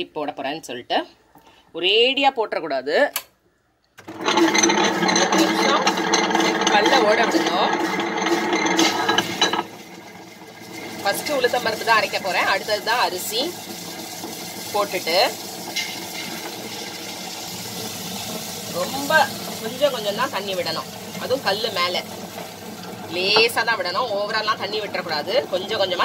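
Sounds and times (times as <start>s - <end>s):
woman speaking: 1.8s - 3.2s, 6.6s - 7.8s, 23.1s - 26.0s
wet grinder running: 4.0s - 26.0s.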